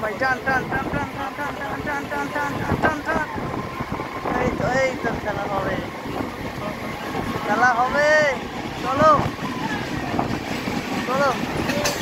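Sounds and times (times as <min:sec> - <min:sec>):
passengers shouting: 0:00.0 - 0:12.0
train running at speed: 0:00.0 - 0:12.0
wind on microphone: 0:00.2 - 0:11.9.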